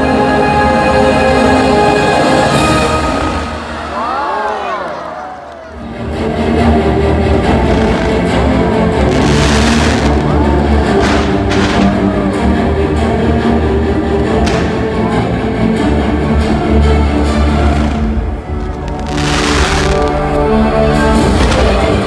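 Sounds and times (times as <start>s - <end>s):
firework cracks: 7.6s - 8.3s, 9.1s - 12.1s, 14.4s - 14.9s, 17.7s - 20.5s, 21.2s - 22.0s
firework hissing rush: 18.9s - 20.3s.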